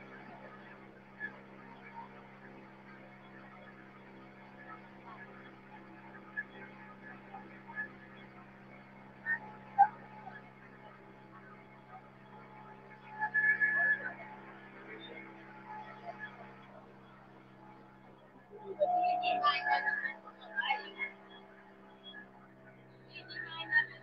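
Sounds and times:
faint voices: 0:00.0 - 0:24.0.

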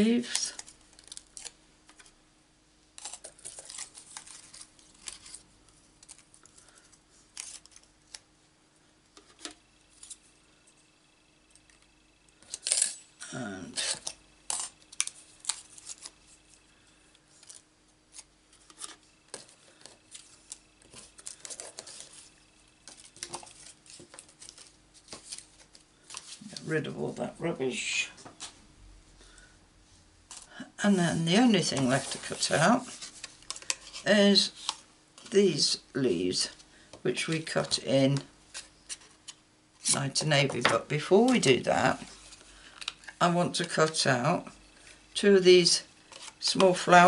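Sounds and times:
paper rustling: 0:03.0 - 0:08.2, 0:17.3 - 0:26.7, 0:31.4 - 0:35.4.

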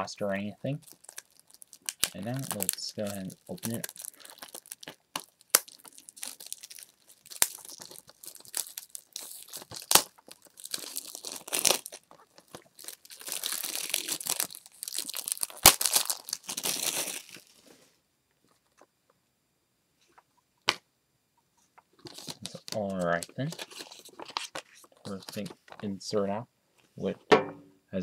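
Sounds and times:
plastic wrapping crinkling and tearing: 0:00.7 - 0:17.6, 0:21.9 - 0:25.8.

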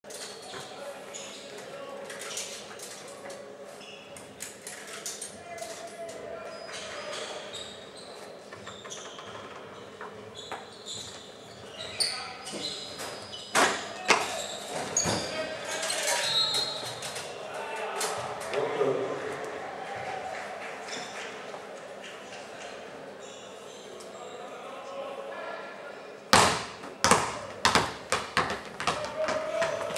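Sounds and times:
murmur of voices: 0:13.7 - 0:27.7
basketballs bouncing on hard floor: 0:26.4 - 0:29.9.

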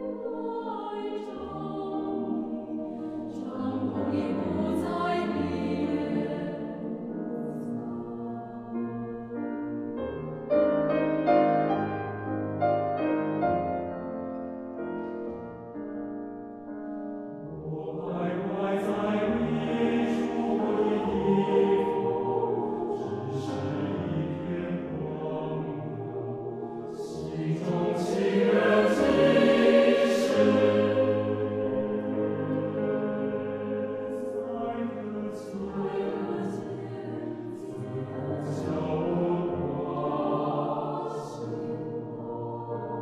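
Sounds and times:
mixed choir singing: 0:00.0 - 0:15.6, 0:17.5 - 0:43.0
grand piano: 0:00.0 - 0:43.0.

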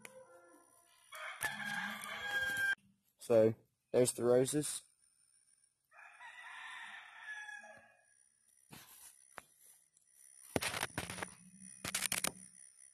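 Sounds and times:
rooster crowing: 0:01.1 - 0:02.8, 0:05.9 - 0:08.0.

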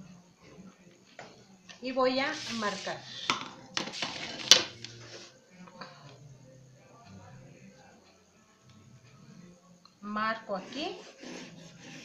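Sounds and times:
paper sliding and rustling: 0:02.3 - 0:03.0, 0:03.8 - 0:05.3.

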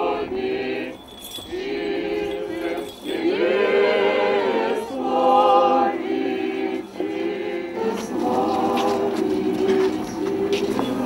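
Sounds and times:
voices singing a chant together: 0:00.0 - 0:11.0.

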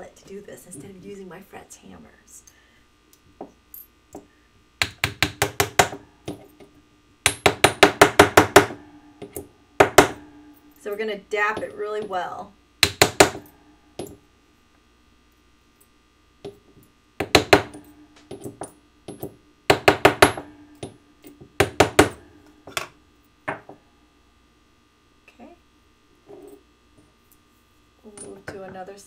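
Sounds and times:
mallet striking metal punch: 0:07.2 - 0:10.6, 0:12.8 - 0:14.2, 0:17.2 - 0:21.0.

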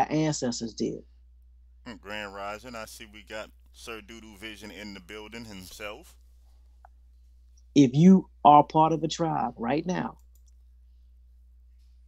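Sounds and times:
low electrical hum: 0:00.0 - 0:12.0
spoken word: 0:01.9 - 0:06.1
faint clicks: 0:10.2 - 0:10.6.

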